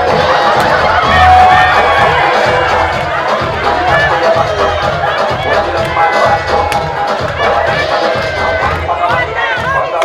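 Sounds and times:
crowd shouting and whooping: 0.0 - 10.0
loud dance music: 0.0 - 10.0.

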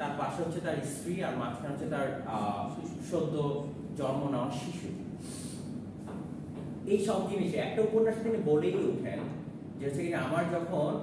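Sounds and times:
man speaking: 0.0 - 5.4
man inhaling through nose: 5.2 - 5.8.

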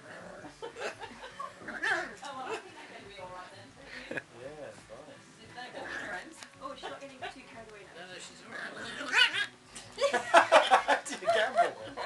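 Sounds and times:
small dogs play-fighting: 1.6 - 2.4, 8.4 - 9.8
dog yipping: 9.0 - 9.5.

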